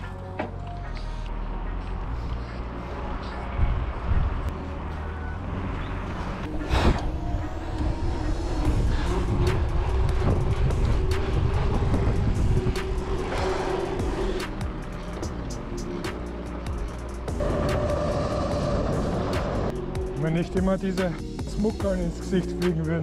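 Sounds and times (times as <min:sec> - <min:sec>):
wind buffeting microphone: 0:03.4 - 0:04.5, 0:06.4 - 0:15.8
bike tyres rolling on asphalt: 0:07.4 - 0:19.7
bike rattles and clicks: 0:07.7 - 0:17.9.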